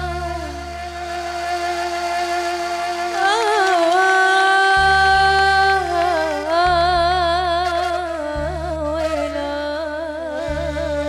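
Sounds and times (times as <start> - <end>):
woman singing long note: 3.1 - 11.0.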